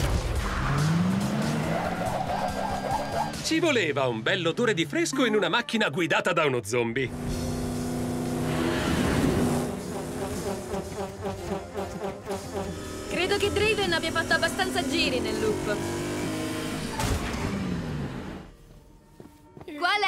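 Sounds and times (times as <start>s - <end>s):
background music: 0.0s - 20.0s
car engine running: 7.1s - 18.5s.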